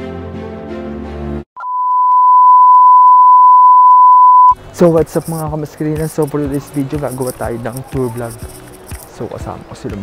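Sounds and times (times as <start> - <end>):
background music: 0.0 - 1.5, 4.6 - 10.0
steady test tone beep: 1.6 - 4.6.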